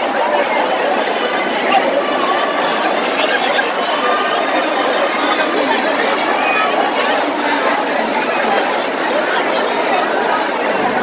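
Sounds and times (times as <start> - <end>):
loud crowd chatter: 0.0 - 11.0.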